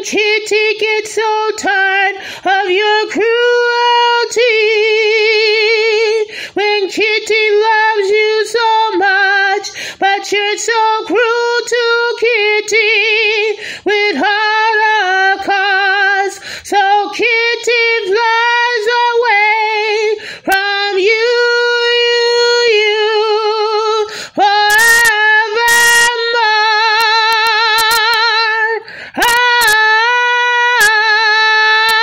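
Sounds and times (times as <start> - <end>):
woman singing unaccompanied: 0.0 - 32.0
quick breath: 2.2 - 2.5, 6.3 - 6.6, 9.7 - 10.0, 13.6 - 13.9, 16.4 - 16.7, 20.2 - 20.5, 24.1 - 24.4, 28.8 - 29.2
woman singing long note: 24.4 - 28.2.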